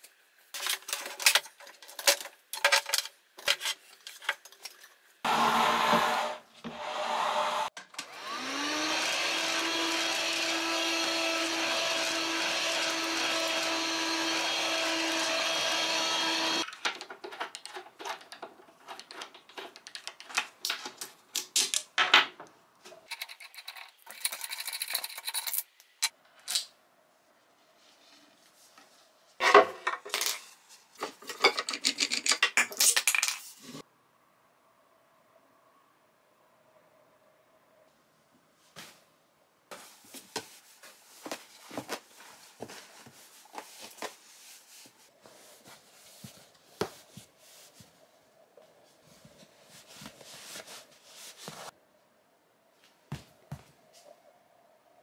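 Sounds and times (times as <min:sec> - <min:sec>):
shelf parts clicking and rattling: 0:00.6 - 0:04.6, 0:16.7 - 0:25.7.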